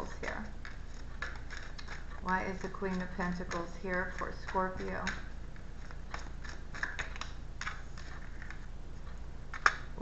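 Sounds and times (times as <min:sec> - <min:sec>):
cards being shuffled: 0:00.6 - 0:08.7.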